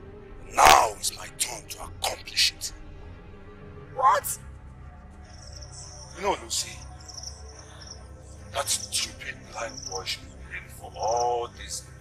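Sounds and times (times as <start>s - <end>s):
insects droning high-pitched: 5.2s - 12.0s.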